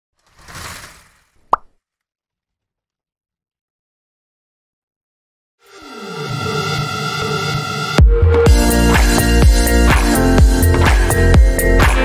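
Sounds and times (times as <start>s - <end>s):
whoosh: 0.2s - 1.7s.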